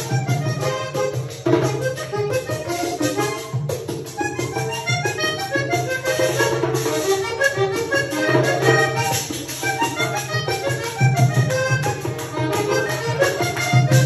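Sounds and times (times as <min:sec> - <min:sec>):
button accordion melody: 0:00.0 - 0:14.0.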